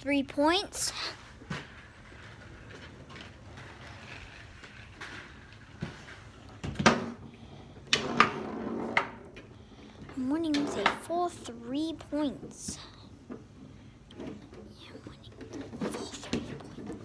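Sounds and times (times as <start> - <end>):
foosball rods and ball knocking: 1.5 - 9.5.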